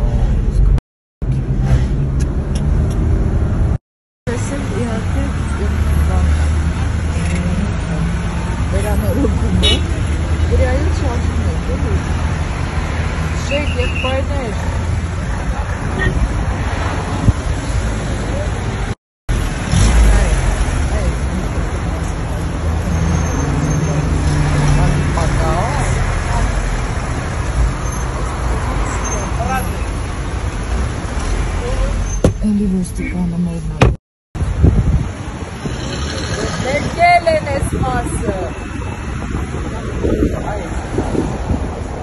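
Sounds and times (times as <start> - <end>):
people talking: 4.3 - 6.5, 7.2 - 9.8, 10.4 - 12.1, 13.4 - 14.6, 19.9 - 22.5, 31.6 - 34.0, 36.2 - 38.6, 39.7 - 40.8.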